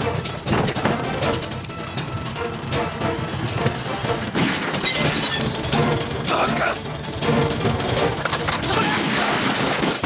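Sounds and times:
dramatic film score: 0:00.0 - 0:10.0.

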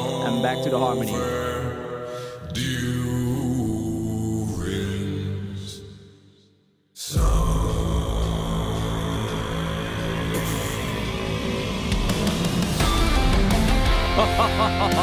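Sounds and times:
heavy metal music with electric guitar: 0:07.2 - 0:15.0.

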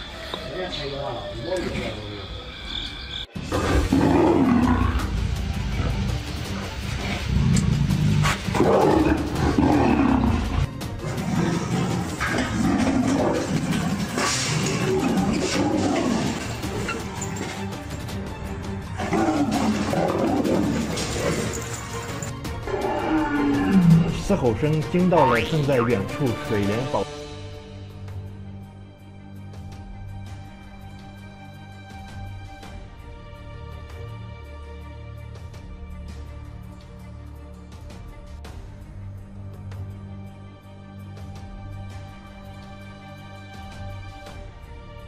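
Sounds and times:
music: 0:00.0 - 0:45.0
big cats roaring and snarling: 0:03.4 - 0:18.2, 0:18.8 - 0:24.5.

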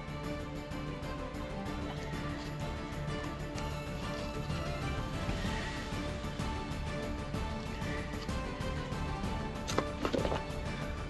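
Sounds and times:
background music sustained tones: 0:00.0 - 0:11.0.

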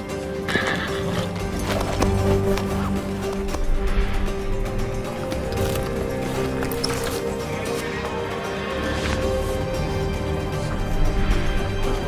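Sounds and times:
background music sustained tones: 0:00.0 - 0:12.0
horse neighing: 0:00.4 - 0:01.6.

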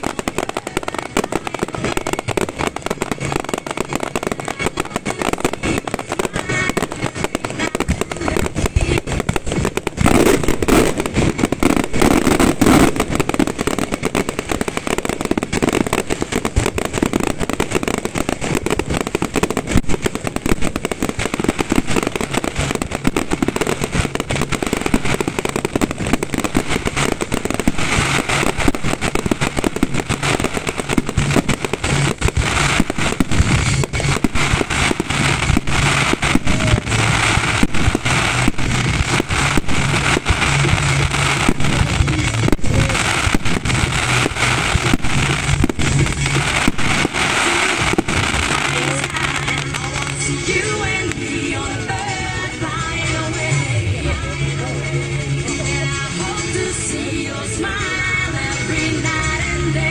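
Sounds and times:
crackling of crackle stars: 0:00.0 - 0:53.0
fireworks shells bursting: 0:00.0 - 0:54.3.

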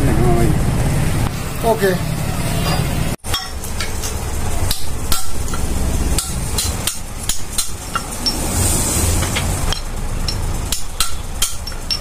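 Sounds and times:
steady low rumble: 0:00.0 - 0:12.0
hammer striking metal: 0:02.6 - 0:08.6, 0:09.2 - 0:12.0.

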